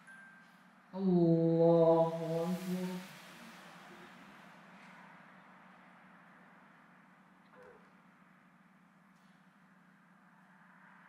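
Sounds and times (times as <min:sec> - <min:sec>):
man chanting: 0:01.0 - 0:03.2.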